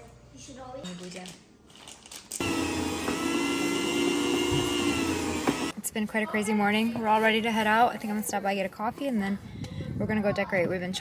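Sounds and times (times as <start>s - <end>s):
meat slicer motor whining: 2.4s - 5.7s.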